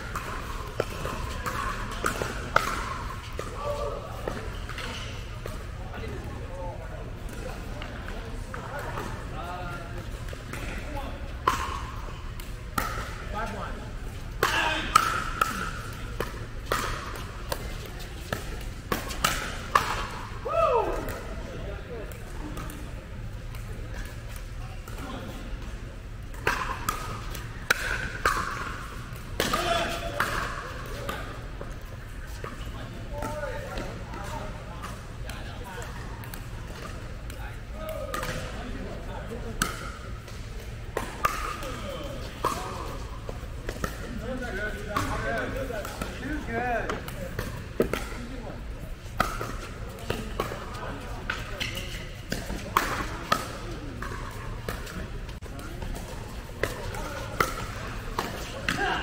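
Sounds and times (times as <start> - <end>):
ball bouncing on hard court: 0.1 - 5.6, 11.4 - 13.6, 14.4 - 20.2, 49.1 - 59.0
players' voices: 0.2 - 59.0.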